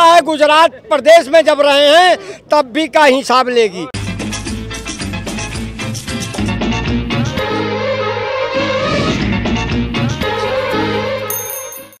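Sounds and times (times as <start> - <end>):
theme music: 4.0 - 11.3.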